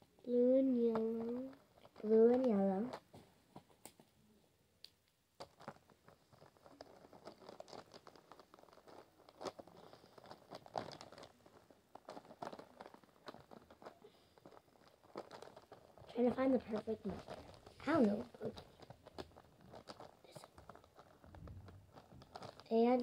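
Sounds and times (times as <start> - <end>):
plastic markers clicking and rattling: 0.3 - 3.2, 5.4 - 23.0
hand rummaging in plastic pouch: 5.4 - 23.0.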